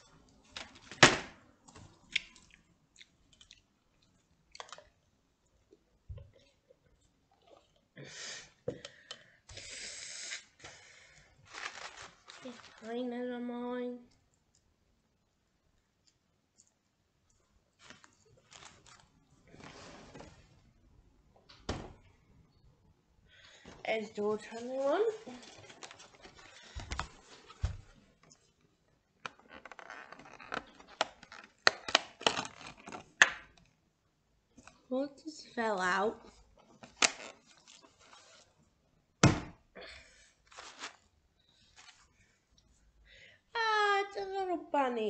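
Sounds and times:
person sniffing through nose: 9.5s - 10.7s.

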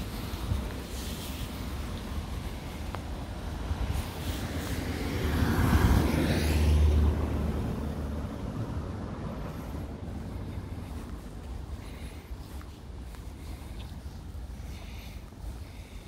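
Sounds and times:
van driving past: 3.4s - 11.4s.

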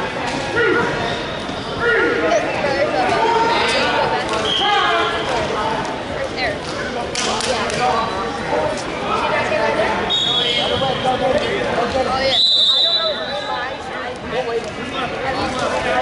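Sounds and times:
indistinct voices talking in gym: 0.0s - 16.0s.

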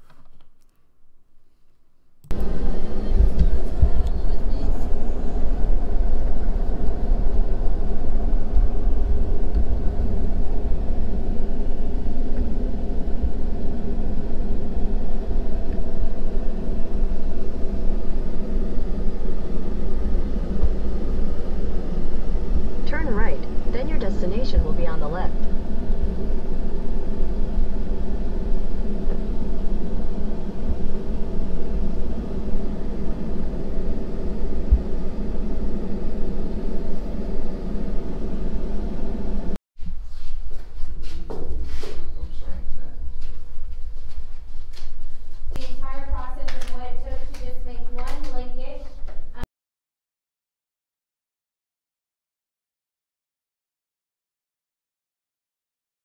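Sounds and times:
diesel engine cab drone: 2.2s - 39.6s.

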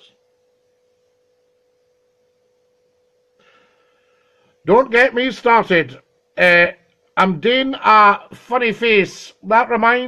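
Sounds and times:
faint steady pure tone: 0.0s - 10.0s.

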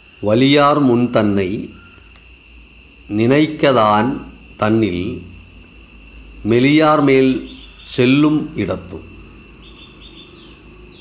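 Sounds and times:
insect chirps: 0.0s - 11.0s
insect high-pitched whine: 0.0s - 11.0s.

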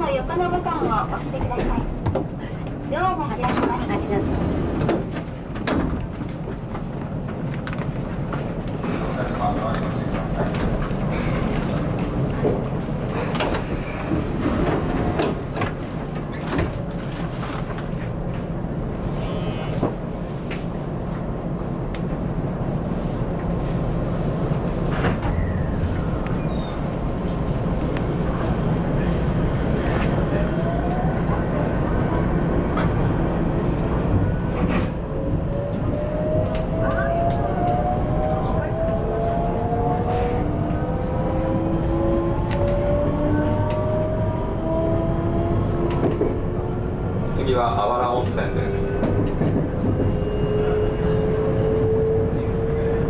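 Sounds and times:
train low hum: 0.0s - 53.0s.

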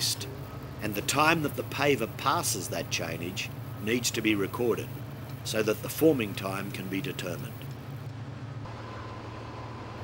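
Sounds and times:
heavy construction machinery hum: 0.0s - 10.0s.

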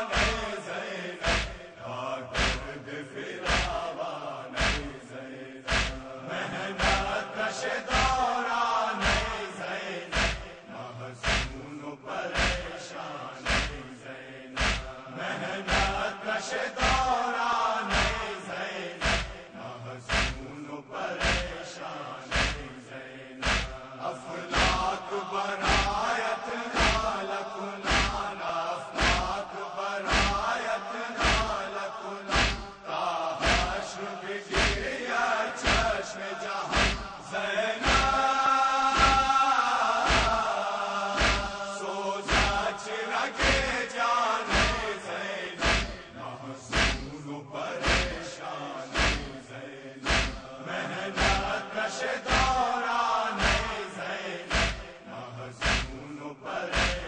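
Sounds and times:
men chanting in unison: 0.0s - 57.0s.

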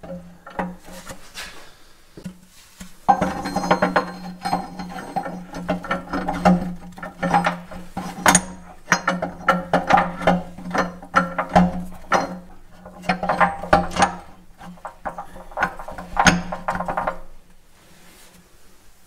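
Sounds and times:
metal gears clinking and knocking: 3.1s - 17.4s.

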